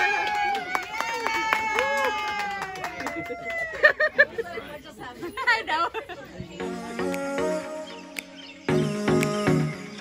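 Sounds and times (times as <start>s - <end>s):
long high-pitched cheer: 0.0s - 4.0s
people clapping: 0.0s - 4.1s.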